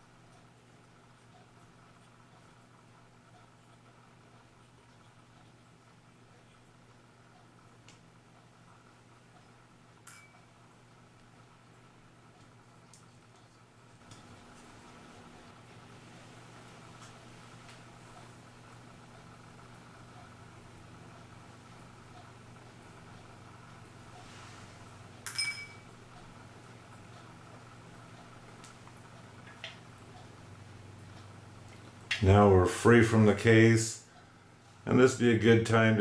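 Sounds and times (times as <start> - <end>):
metallic clink with high ring: 10.1 - 10.4, 25.2 - 25.9.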